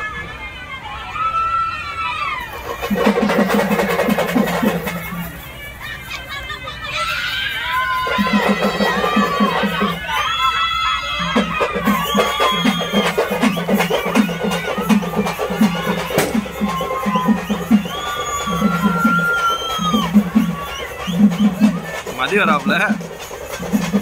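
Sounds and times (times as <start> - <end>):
crowd: 0.0 - 24.0
short high calls: 11.0 - 23.9
low drum beating: 11.3 - 24.0.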